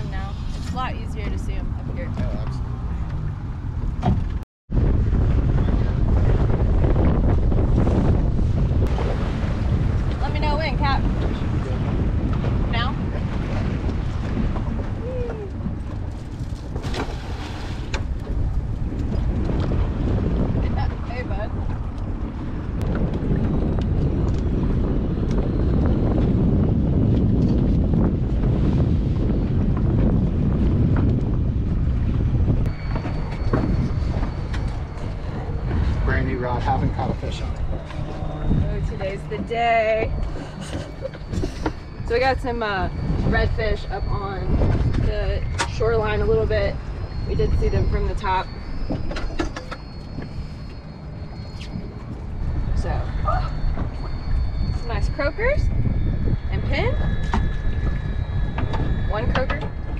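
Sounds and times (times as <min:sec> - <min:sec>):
heavy wind rumbling on microphone: 0:00.0 - 0:59.9.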